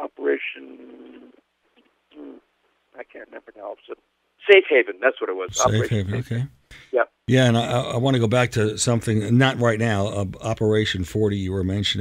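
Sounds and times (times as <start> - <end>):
man speaking over telephone: 0.0 - 1.2, 2.9 - 12.0.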